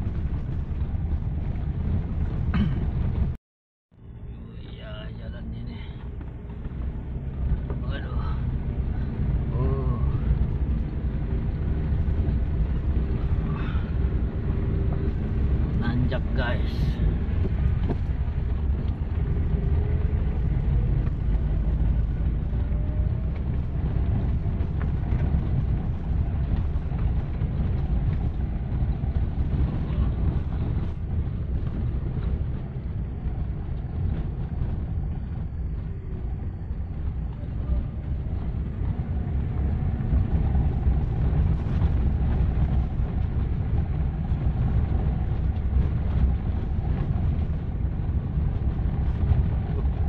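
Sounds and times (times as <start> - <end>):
car cabin rumble on gravel road: 0.0 - 3.4, 4.0 - 50.0.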